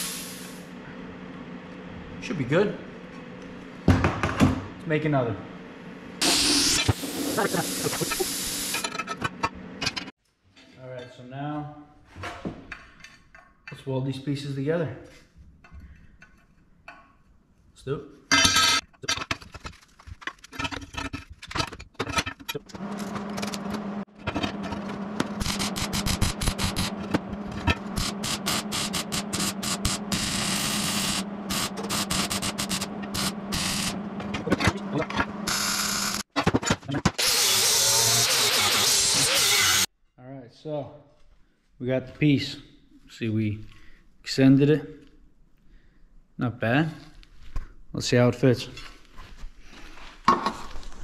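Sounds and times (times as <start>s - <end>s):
welder hum: 0.0s - 0.8s, 6.2s - 9.0s, 22.8s - 36.3s, 37.2s - 39.9s
welding arc crackling: 6.2s - 8.8s, 25.3s - 27.0s, 27.7s - 34.0s
angle grinder on steel: 22.8s - 36.3s, 37.2s - 39.9s.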